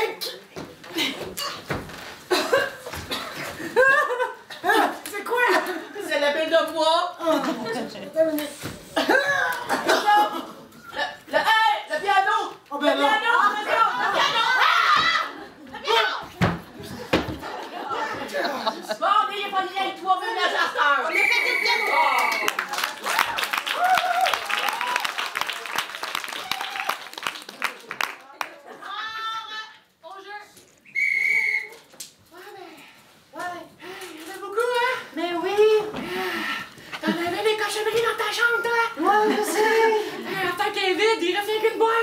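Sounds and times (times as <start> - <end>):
short high whistle: 30.9 - 31.8.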